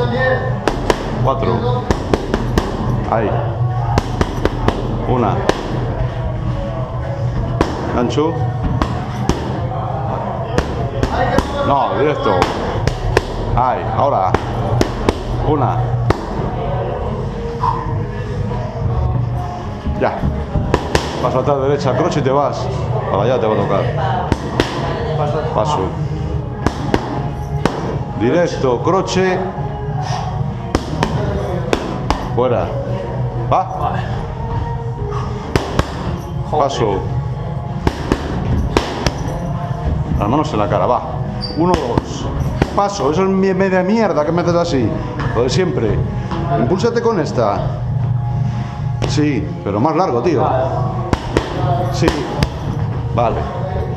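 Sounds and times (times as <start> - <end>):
steady low hum: 0.0 - 53.9
glove punch smacking pad: 0.6 - 1.2, 1.9 - 2.9, 20.6 - 21.3, 26.6 - 27.9, 35.5 - 36.1, 37.8 - 39.3, 51.1 - 52.6.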